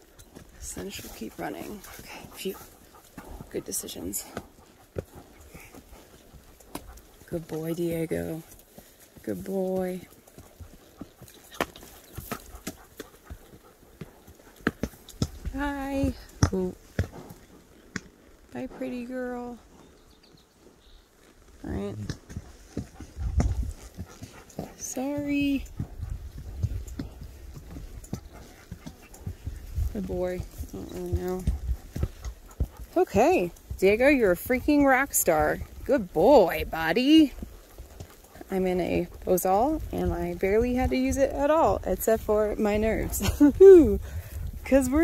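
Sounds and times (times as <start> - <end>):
horse hoofbeats on dirt: 0.0 - 45.0.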